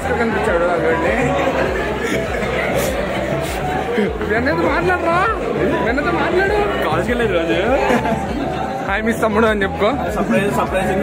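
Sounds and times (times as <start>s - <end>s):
men talking animatedly: 0.0s - 11.0s
restaurant crowd chatter: 0.0s - 11.0s.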